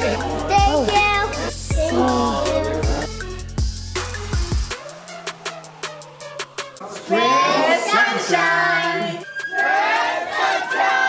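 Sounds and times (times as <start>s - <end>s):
high voices singing: 0.0s - 3.5s, 6.8s - 11.0s
music track: 0.0s - 11.0s.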